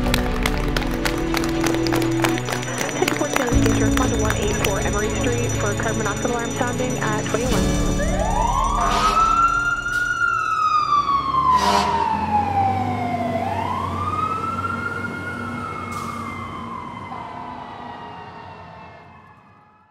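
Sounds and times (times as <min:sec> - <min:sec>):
fire truck siren wailing: 0:00.0 - 0:19.9.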